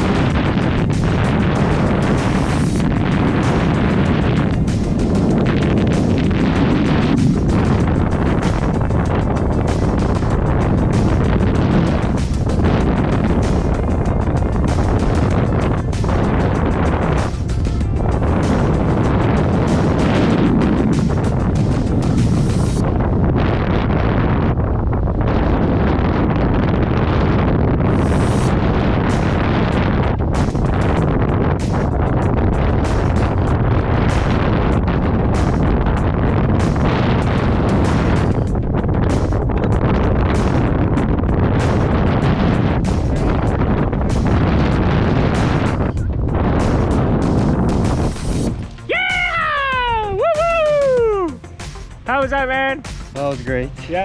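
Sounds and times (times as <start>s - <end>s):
music playing: 0.0s - 23.3s, 27.8s - 54.0s
wind buffeting microphone: 0.0s - 54.0s.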